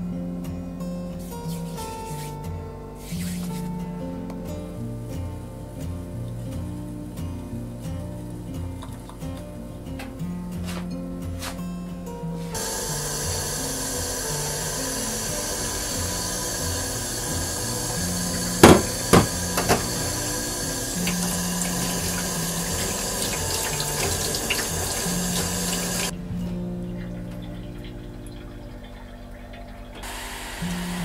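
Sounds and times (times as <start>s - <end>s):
tap running into metal sink: 12.6s - 26.1s.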